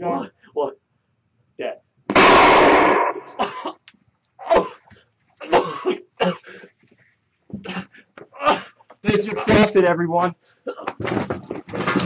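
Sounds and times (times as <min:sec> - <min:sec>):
man coughing grunts and gasps: 0:03.3 - 0:03.8, 0:04.4 - 0:06.7, 0:07.6 - 0:09.8, 0:10.6 - 0:11.0.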